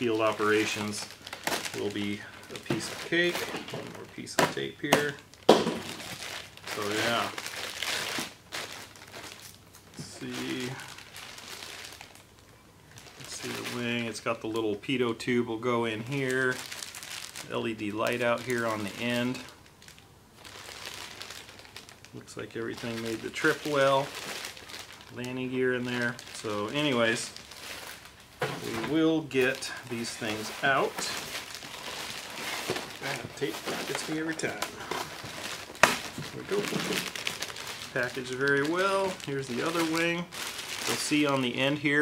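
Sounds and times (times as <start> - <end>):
plastic bags crinkling: 0.0 - 42.0.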